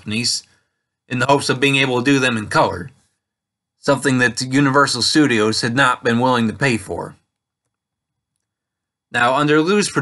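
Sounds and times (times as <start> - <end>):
man's voice: 0.0 - 3.0, 3.8 - 7.2, 9.1 - 10.0
faint clicks: 7.3 - 8.6.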